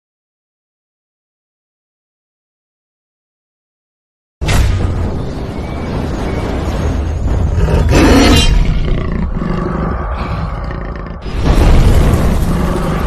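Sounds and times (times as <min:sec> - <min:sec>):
big cat roaring: 0:07.6 - 0:11.4.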